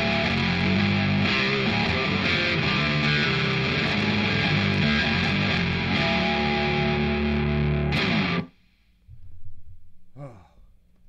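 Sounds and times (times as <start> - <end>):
man sighing: 10.1 - 10.8.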